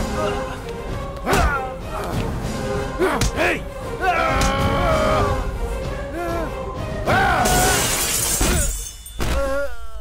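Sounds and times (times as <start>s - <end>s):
glass and metal shattering crash: 7.4s - 9.4s.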